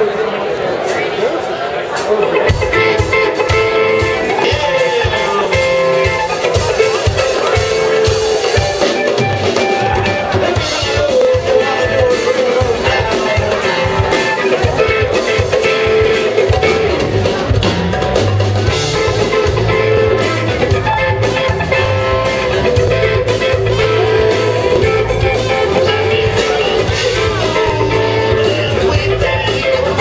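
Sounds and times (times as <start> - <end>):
drum kit: 1.9 - 30.0
bass guitar: 2.0 - 30.0
electric guitar: 2.0 - 30.0.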